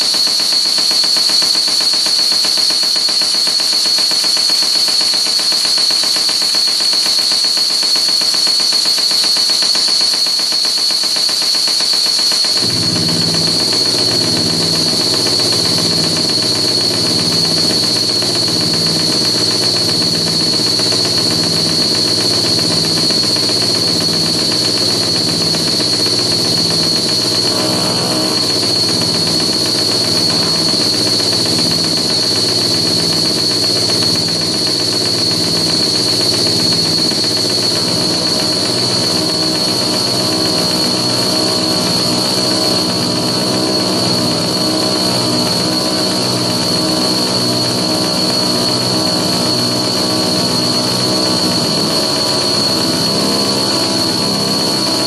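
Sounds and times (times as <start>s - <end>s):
high-pitched electronic whine: 0.0s - 55.0s
electronic warble: 12.4s - 55.0s
pulsing low drone: 12.6s - 54.6s.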